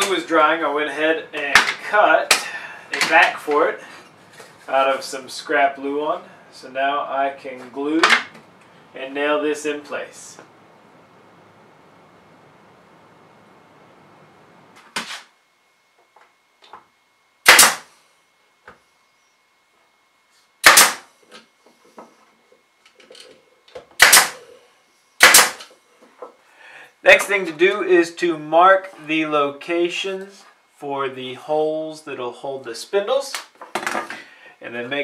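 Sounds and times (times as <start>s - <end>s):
nail gun firing into wood: 17.4s - 17.9s, 20.6s - 21.1s, 24.0s - 24.4s, 25.2s - 25.7s.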